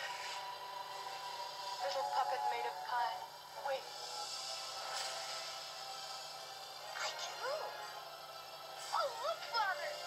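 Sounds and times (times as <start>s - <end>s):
shimmering magic sparkle: 0.0s - 10.0s
soft music through small speaker: 0.0s - 10.0s.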